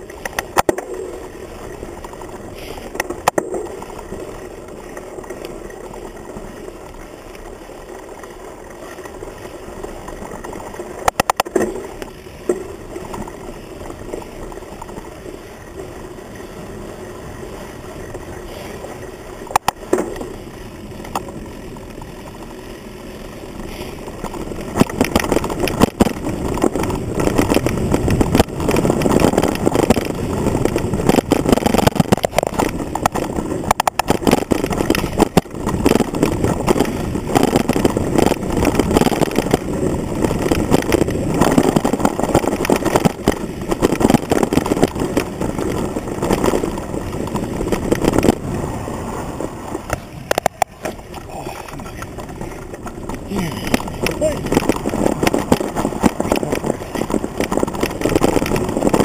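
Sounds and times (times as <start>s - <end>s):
mountain bike rattling on trail: 0.0s - 59.0s.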